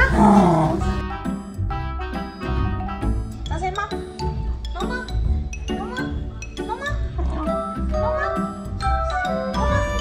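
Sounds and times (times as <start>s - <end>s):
dog whining: 0.0s - 1.0s
background music: 0.0s - 10.0s.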